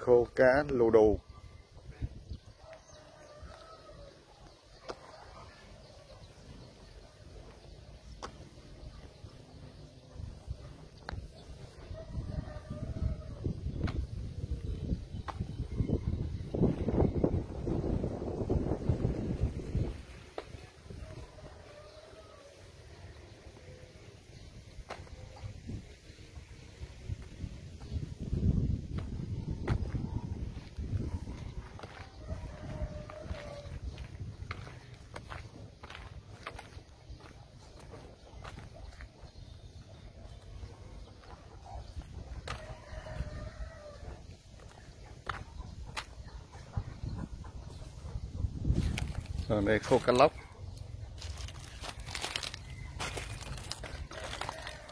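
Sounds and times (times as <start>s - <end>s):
faint outdoor background: 0.0s - 54.9s
rooster crowing: 2.6s - 4.2s, 11.8s - 13.6s, 21.0s - 22.7s, 31.3s - 33.8s, 42.4s - 44.7s, 52.7s - 54.9s
wind buffeting microphone: 10.2s - 21.7s, 25.0s - 38.8s, 39.4s - 49.6s.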